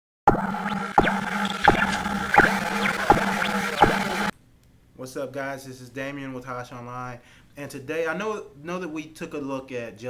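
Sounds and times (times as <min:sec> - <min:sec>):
low electronic drone: 0:00.3 - 0:04.3
sharp bright electronic hits: 0:00.3 - 0:04.3.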